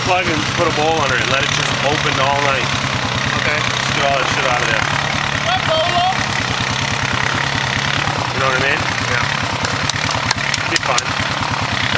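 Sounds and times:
engine idling: 0.0 - 11.9
voices: 0.0 - 11.9.

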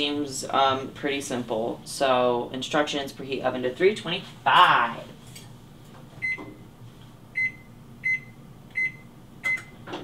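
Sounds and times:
oven control panel beeping: 6.2 - 6.6, 7.4 - 9.8.

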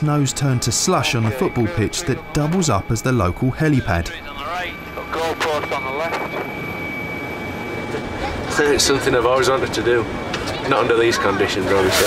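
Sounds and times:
helicopter turbine whine and rotor: 0.0 - 12.0.

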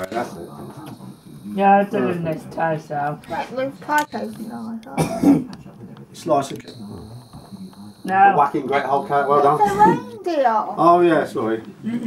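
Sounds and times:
person coughing: 4.9 - 5.5.

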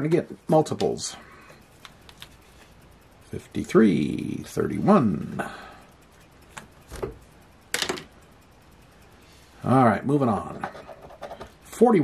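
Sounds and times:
clicky scratchy rattle of handling: 1.6 - 3.8, 10.4 - 11.6.

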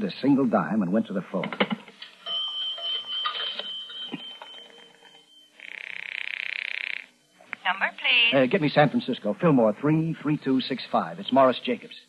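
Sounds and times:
bell-like pay phone ring: 2.0 - 6.4.

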